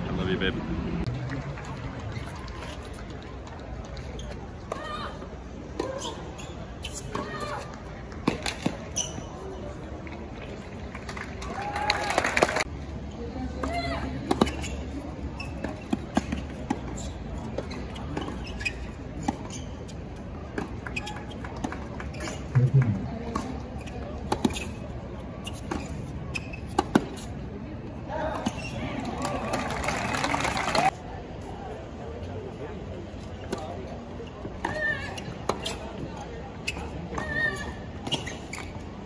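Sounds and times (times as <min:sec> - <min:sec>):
spectators clapping: 0:10.9 - 0:12.7, 0:29.2 - 0:30.9
crowd murmur: 0:22.2 - 0:38.1
tennis ball bouncing: 0:22.6 - 0:24.7.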